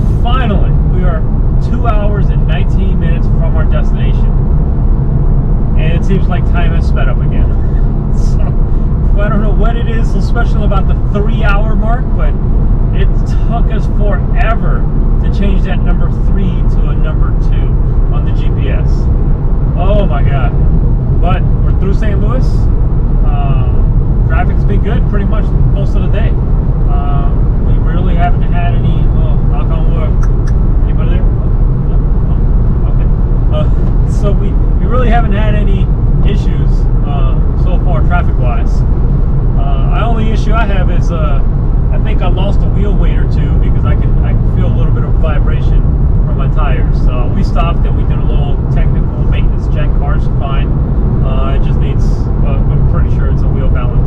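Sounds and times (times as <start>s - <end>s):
man talking: 0.0s - 4.4s, 5.7s - 19.1s, 19.7s - 20.6s, 21.2s - 38.8s, 39.5s - 54.0s
car engine and tyres drone: 0.0s - 54.0s.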